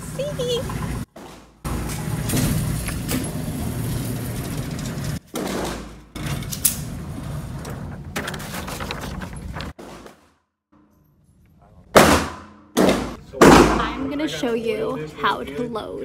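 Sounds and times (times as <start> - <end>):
sharp crack: 12.0 - 13.9.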